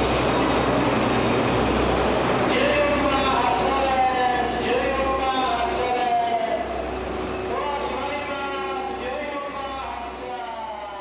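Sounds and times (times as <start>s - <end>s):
electric locomotive rolling past: 0.0s - 11.0s
wheels squealing: 6.2s - 10.0s
thin high steady squeal: 6.4s - 10.1s.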